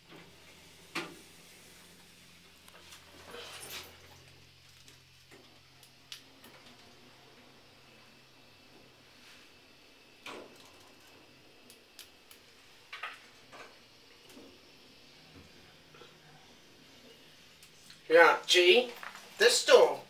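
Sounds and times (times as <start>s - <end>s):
faint lift hum: 0.0s - 20.0s.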